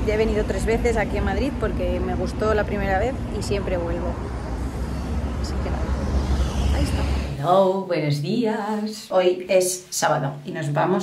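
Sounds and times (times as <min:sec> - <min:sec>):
cars and motorbikes passing: 0:00.0 - 0:07.5.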